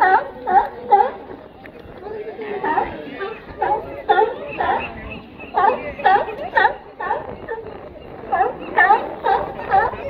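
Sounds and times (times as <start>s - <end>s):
sea lions barking: 0.0s - 10.0s.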